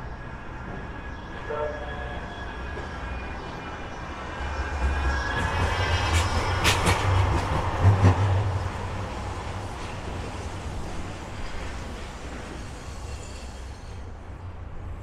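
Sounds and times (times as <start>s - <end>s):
tram passing: 0.0s - 15.0s.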